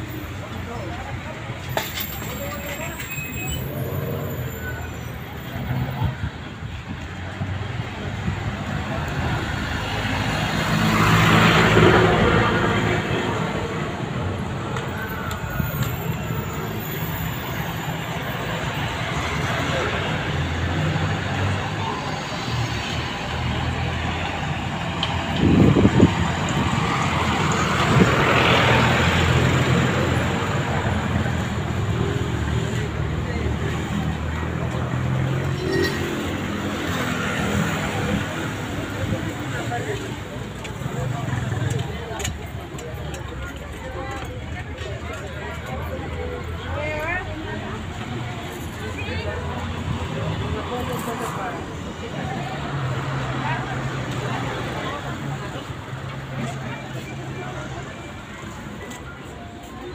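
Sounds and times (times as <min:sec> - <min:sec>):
crowd voices: 0:00.0 - 0:59.9
traffic noise: 0:00.0 - 0:59.9.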